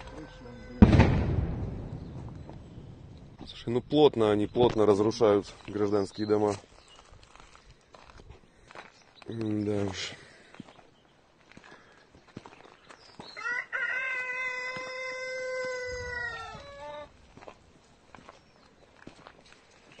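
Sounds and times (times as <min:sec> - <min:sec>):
rooster crowing: 0:00.0 - 0:00.8, 0:13.4 - 0:17.1.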